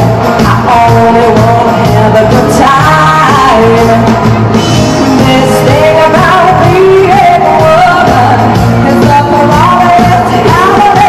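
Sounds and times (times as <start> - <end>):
live band playing: 0.0 - 11.0
woman singing pop vocals: 0.0 - 11.0.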